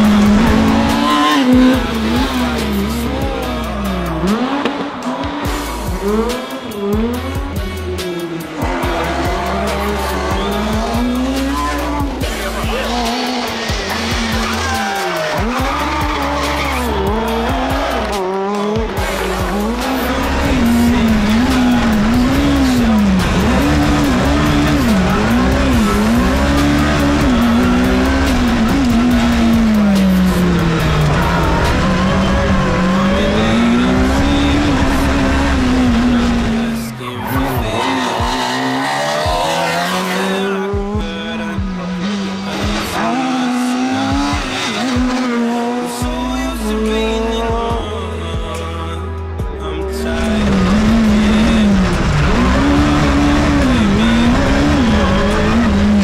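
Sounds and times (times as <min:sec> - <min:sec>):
background music: 0:00.0 - 0:56.0
rally car engine revving: 0:00.0 - 0:56.0.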